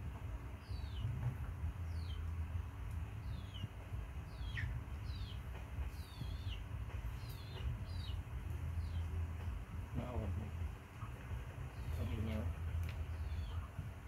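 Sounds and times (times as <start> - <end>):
steady low rumble: 0.0 - 14.0.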